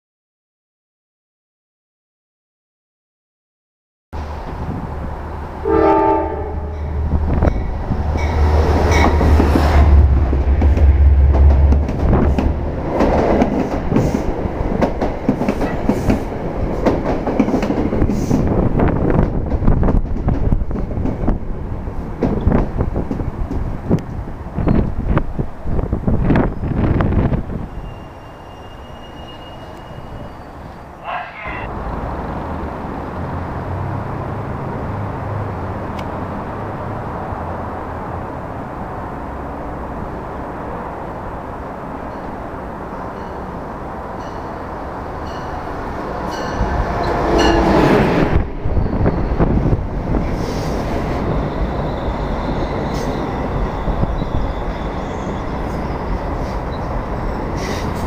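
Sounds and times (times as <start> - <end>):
train horn blast: 5.6 - 6.9
train wheels clattering over rails: 7.4 - 18.5.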